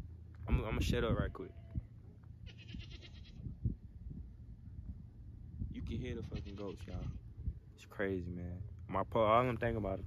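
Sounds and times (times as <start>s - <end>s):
low microphone rumble: 0.0s - 10.0s
goat bleating: 1.3s - 3.5s, 6.1s - 7.3s.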